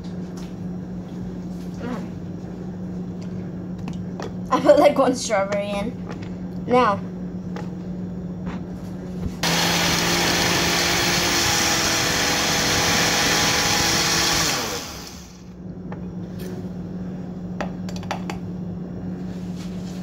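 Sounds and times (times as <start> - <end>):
blender running: 9.4 - 15.6.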